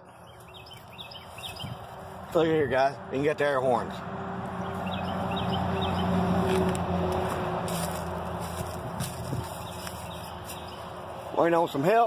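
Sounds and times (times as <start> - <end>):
vehicle passing by: 0.7 - 11.7.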